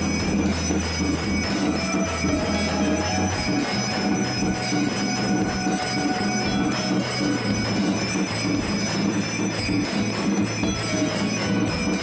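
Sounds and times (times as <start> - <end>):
temple bells and gongs ringing: 0.0 - 12.0.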